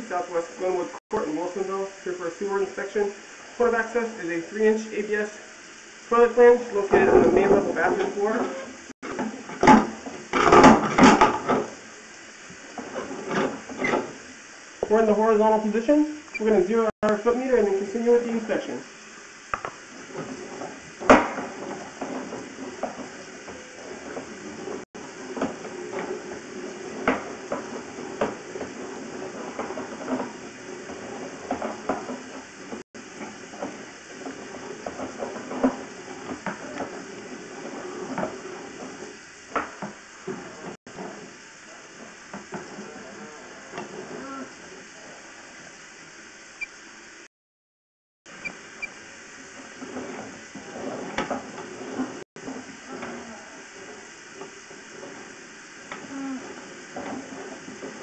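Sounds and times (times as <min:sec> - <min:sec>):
steady hiss: 0:00.0 - 0:47.3, 0:48.3 - 0:58.0.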